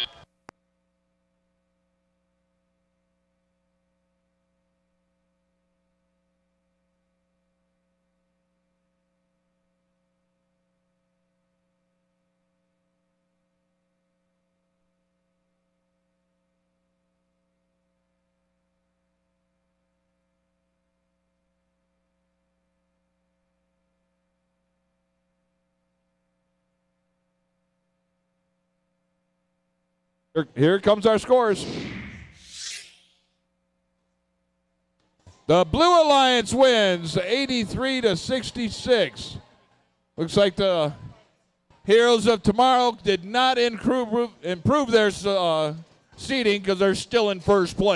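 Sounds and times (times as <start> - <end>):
whoosh hiss effect: 31.6 - 33.2.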